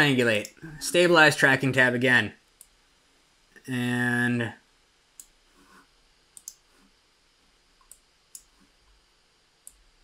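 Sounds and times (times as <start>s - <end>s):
computer mouse clicks: 5.2s - 6.7s, 7.8s - 8.7s, 9.6s - 9.8s.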